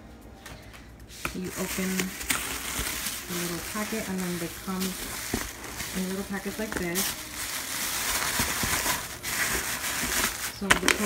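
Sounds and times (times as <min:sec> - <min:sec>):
paper bags rustling: 0:01.2 - 0:11.0.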